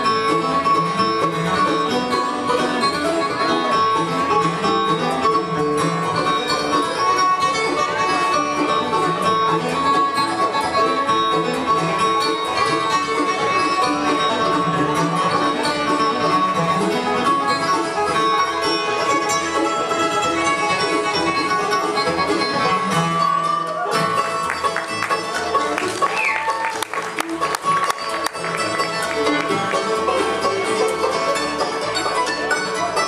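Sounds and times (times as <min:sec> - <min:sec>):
banjo lead: 0:00.0 - 0:33.0
bluegrass band playing: 0:00.0 - 0:33.0.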